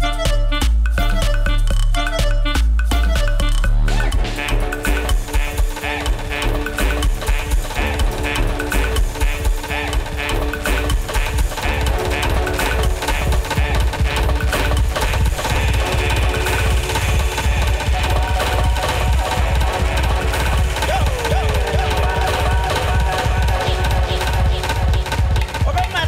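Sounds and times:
dance music with heavy bass: 0:00.0 - 0:26.0.

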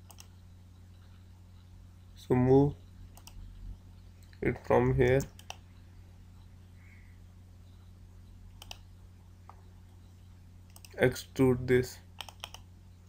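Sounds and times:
computer mouse clicks: 0:00.0 - 0:00.3, 0:03.1 - 0:03.4, 0:05.0 - 0:05.6, 0:08.5 - 0:08.8, 0:10.7 - 0:11.0, 0:12.2 - 0:12.7
low steady hum: 0:00.0 - 0:13.0.

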